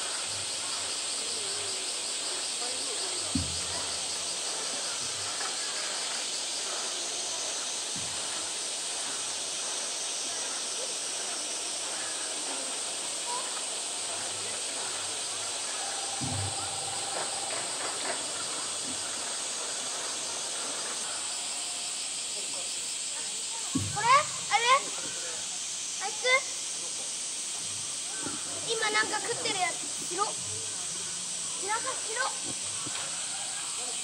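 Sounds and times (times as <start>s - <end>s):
high-pitched outdoor hiss: 0.0s - 34.0s
indistinct voices in background: 0.0s - 34.0s
low thump: 3.2s - 5.4s, 16.0s - 19.2s, 23.7s - 24.5s.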